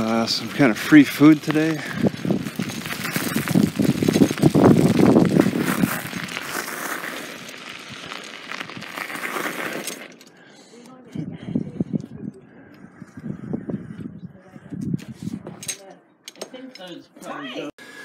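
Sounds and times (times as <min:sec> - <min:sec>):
wind buffeting microphone: 0:00.0 - 0:06.4, 0:11.1 - 0:15.6
bicycle tyres crunching on gravel: 0:00.0 - 0:10.4.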